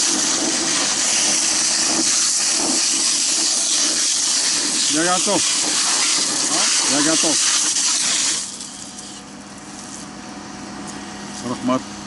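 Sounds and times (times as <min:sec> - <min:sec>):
fire hose spraying water: 0:00.0 - 0:10.0.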